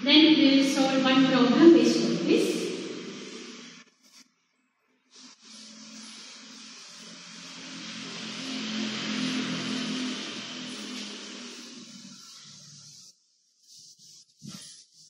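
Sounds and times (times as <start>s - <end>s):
cloth rubbing on chalkboard: 5.1s - 15.0s.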